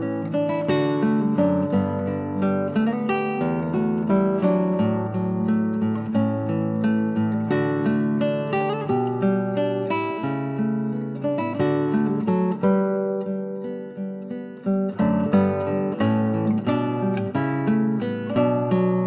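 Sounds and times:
acoustic guitar music: 0.0 - 19.0.

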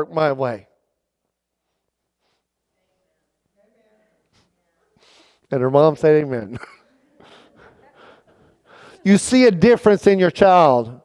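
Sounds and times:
man breathing: 5.0 - 5.5, 7.2 - 9.1.

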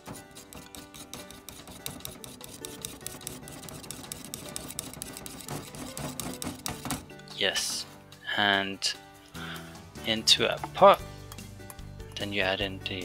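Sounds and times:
background music: 0.0 - 13.0
whisk clicking against bowl: 0.4 - 7.0.

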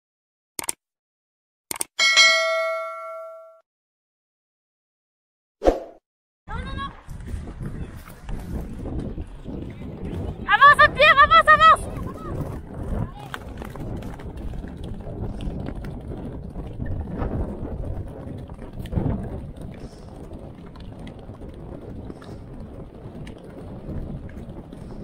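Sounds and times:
wind buffeting microphone: 6.5 - 25.0.

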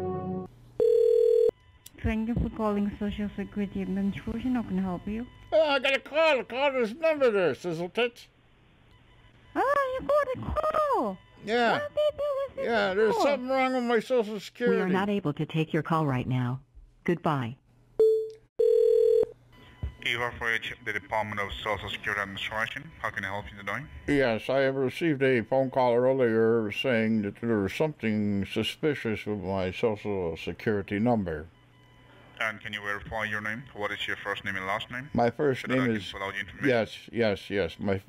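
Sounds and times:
brass music: 0.0 - 0.5
telephone line tone: 0.8 - 2.2, 18.0 - 21.3
steady buzzy telephone beep: 0.8 - 6.4, 8.9 - 12.0, 18.0 - 26.8, 31.4 - 36.9.

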